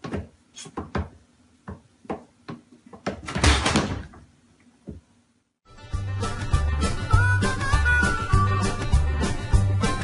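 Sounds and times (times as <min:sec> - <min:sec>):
cabinet door banging shut: 0:03.1 - 0:04.2.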